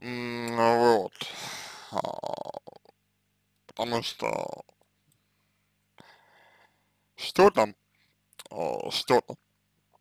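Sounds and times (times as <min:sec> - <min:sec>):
man's voiced hesitation sound: 0:00.0 - 0:02.9, 0:03.7 - 0:04.7, 0:08.4 - 0:09.4
man exhaling breathily: 0:01.2 - 0:02.2.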